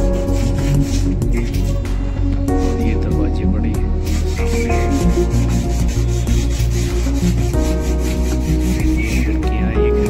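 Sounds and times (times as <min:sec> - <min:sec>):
sandpaper rubbing on wood: 0:00.0 - 0:01.9, 0:02.5 - 0:03.2, 0:03.9 - 0:10.0
background music: 0:00.0 - 0:10.0.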